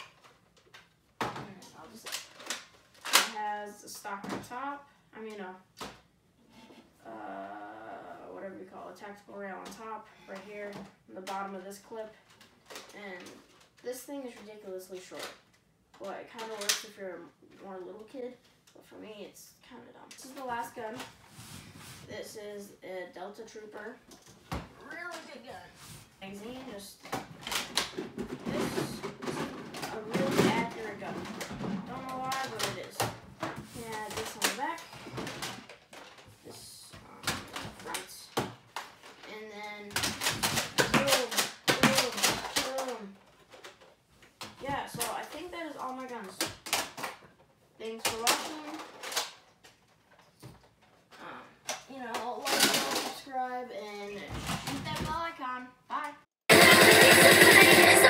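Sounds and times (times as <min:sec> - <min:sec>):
boy talking: 0:01.3 - 0:02.2, 0:03.1 - 0:05.6, 0:07.0 - 0:12.2, 0:12.8 - 0:15.4, 0:16.0 - 0:21.1, 0:22.1 - 0:24.0, 0:24.8 - 0:27.2, 0:28.4 - 0:35.0, 0:36.4 - 0:38.5, 0:39.2 - 0:40.2, 0:40.8 - 0:43.2, 0:44.6 - 0:46.6, 0:47.8 - 0:49.0, 0:51.2 - 0:56.3
electronic music with pulsing beat: 0:56.5 - 0:58.0.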